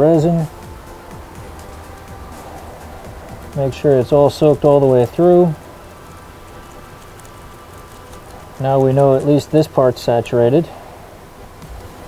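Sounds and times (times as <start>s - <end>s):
faint background music: 0.0s - 12.0s
paintbrush dabbing resin: 0.0s - 12.0s.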